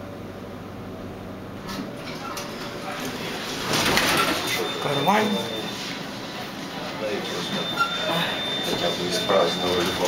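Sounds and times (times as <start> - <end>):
thin high beep: 4.5 - 6.0, 7.2 - 10.0.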